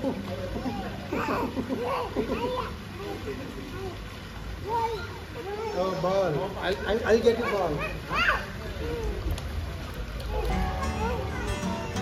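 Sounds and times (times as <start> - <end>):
faint voices in a pool: 0.0 - 12.0.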